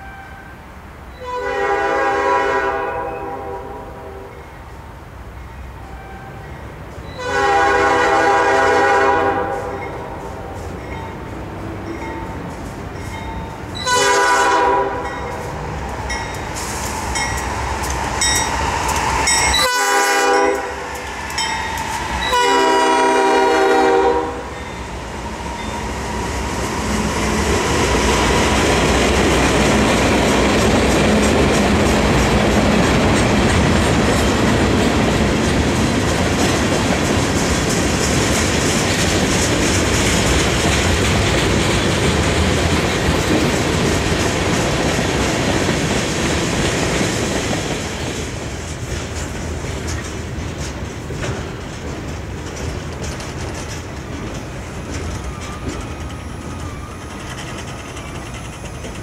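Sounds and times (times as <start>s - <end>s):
freight train rumbling by: 0.0s - 59.0s
locomotive air horn: 1.2s - 4.3s, 7.2s - 10.6s, 13.8s - 15.3s, 19.6s - 20.9s, 22.2s - 24.6s
wheels clacking over rail joints: 10.8s - 59.0s.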